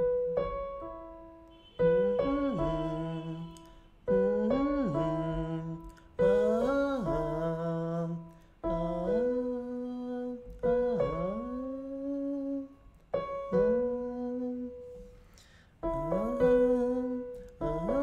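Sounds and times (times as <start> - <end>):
piano notes: 0.0 - 18.0
person singing vocal exercises: 2.1 - 12.9, 13.6 - 15.4, 16.0 - 18.0.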